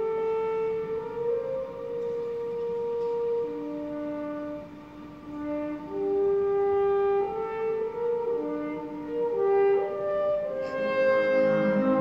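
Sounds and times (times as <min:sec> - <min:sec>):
orchestra playing long held notes: 0:00.0 - 0:12.0.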